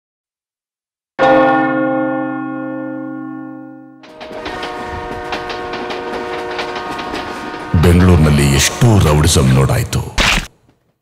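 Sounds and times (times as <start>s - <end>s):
church bell ringing: 1.2s - 10.0s.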